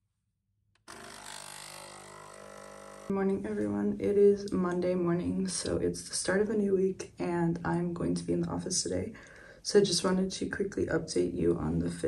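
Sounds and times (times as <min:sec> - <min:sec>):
espresso machine pump humming: 0:00.9 - 0:03.1.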